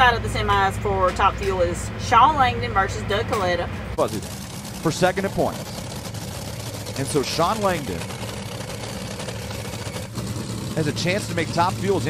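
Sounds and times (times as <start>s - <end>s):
dragster engine idling rumble: 3.4s - 12.0s.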